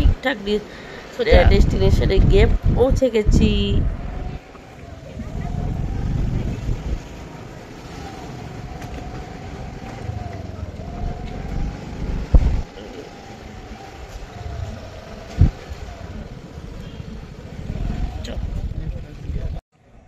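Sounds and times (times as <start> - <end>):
steady rumble: 0.0 - 19.6
motor whine: 2.2 - 18.8
loud thumps: 11.3 - 12.7.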